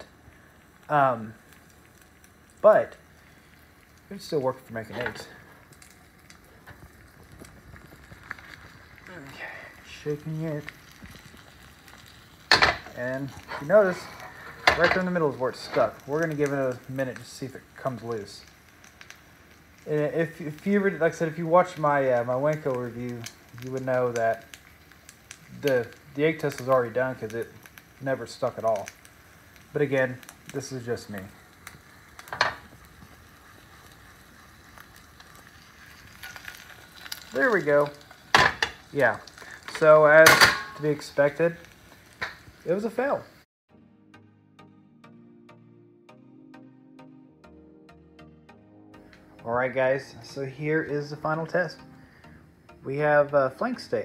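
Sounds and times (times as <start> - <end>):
egg sizzling in pan: 0.0 - 43.5, 49.0 - 54.0
pan knocking on burner: 12.5 - 12.9
skillet clanking on stove grate: 12.5 - 15.9, 32.3 - 32.7, 38.3 - 38.8, 40.2 - 40.9.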